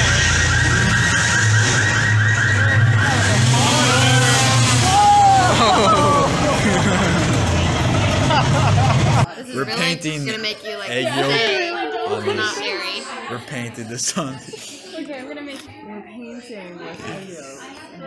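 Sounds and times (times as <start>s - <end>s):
people calling out: 0.0s - 7.7s
engine-like street hum: 0.0s - 9.3s.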